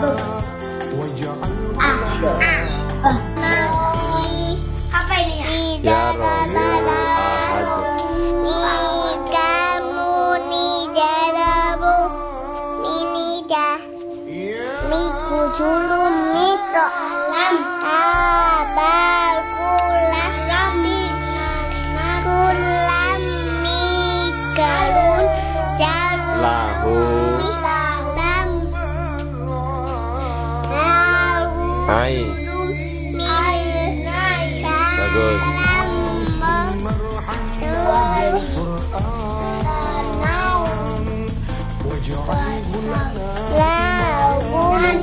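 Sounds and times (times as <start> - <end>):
musical accompaniment: 0.0 - 10.5, 11.7 - 45.0
child singing: 0.0 - 45.0.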